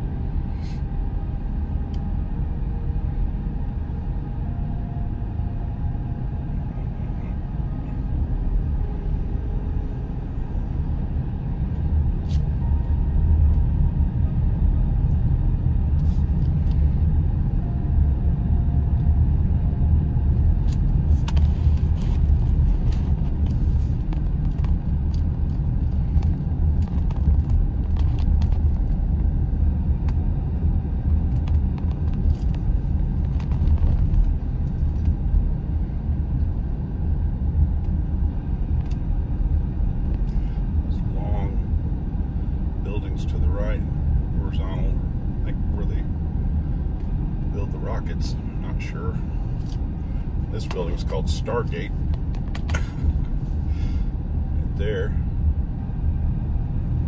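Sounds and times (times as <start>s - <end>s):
tyre and engine rumble: 0.0s - 57.0s.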